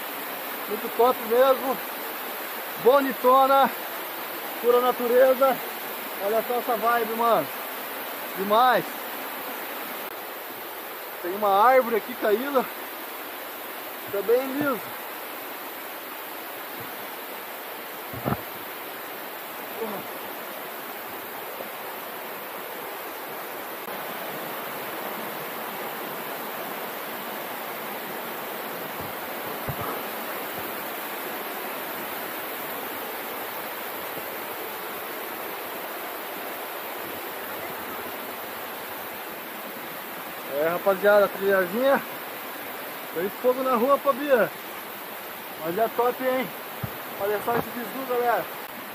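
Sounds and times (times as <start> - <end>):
flowing stream water: 0.0 - 48.9.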